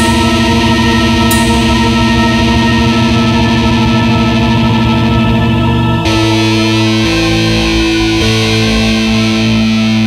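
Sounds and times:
cymbal crash: 0.0 - 5.6
distorted electric guitar chord: 0.0 - 10.0.

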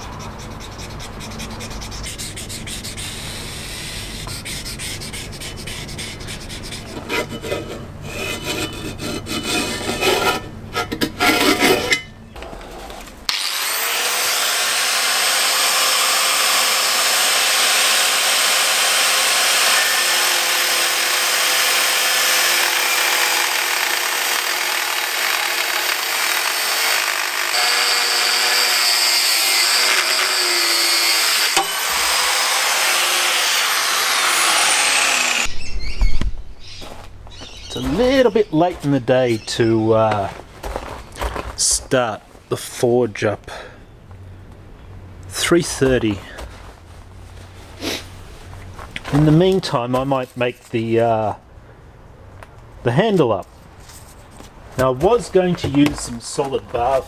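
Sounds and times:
hand scraping on metal bar: 4.2 - 12.0
angle grinder cutting steel: 13.3 - 35.6.

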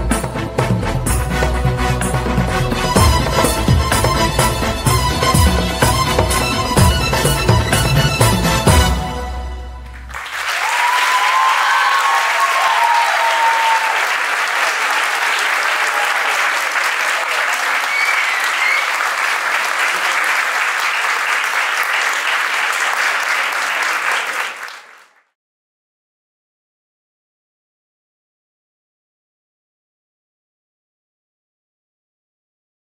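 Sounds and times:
audience clapping: 9.8 - 25.4
cheers and whoops: 10.4 - 19.2.

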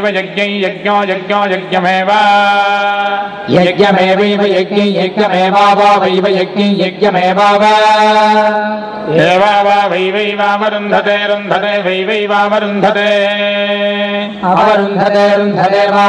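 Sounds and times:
men chanting: 7.3 - 16.0.

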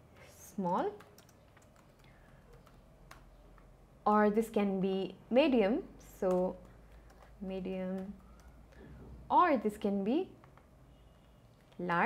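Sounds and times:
keyboard keys clicking: 0.8 - 3.7, 6.2 - 8.8.

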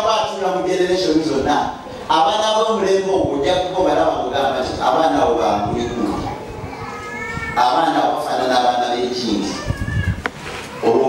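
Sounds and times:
man talking over loudspeakers: 0.0 - 6.3, 7.6 - 9.6.

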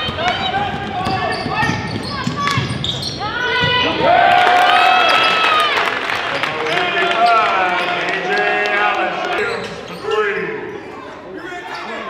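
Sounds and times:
basketball shoes squeaking: 0.0 - 3.8, 9.4 - 12.0.

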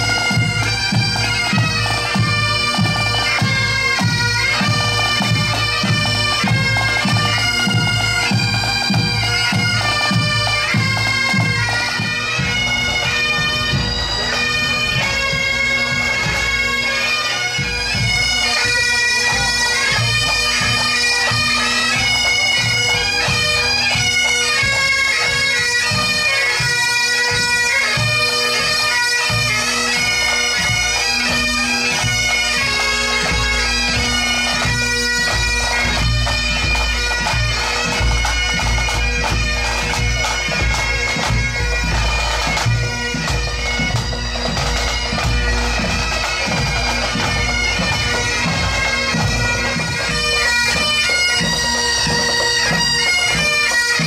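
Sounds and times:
bagpipes with drones: 0.0 - 54.0
snare and bass drum beats: 35.3 - 49.4.

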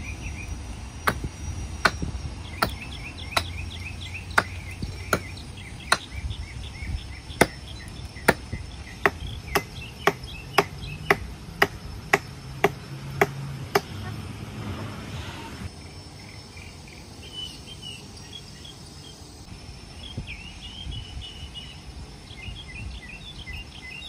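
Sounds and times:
axe chopping tree trunk: 1.1 - 3.6, 4.3 - 6.2, 7.4 - 7.6, 8.3 - 13.9.

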